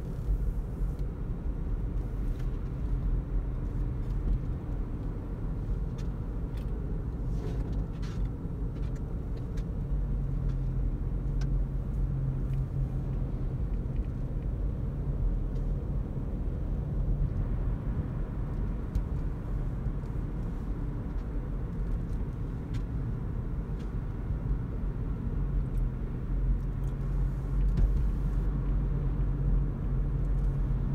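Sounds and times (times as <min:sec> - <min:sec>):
road and tyre rumble: 0:00.0 - 0:30.9.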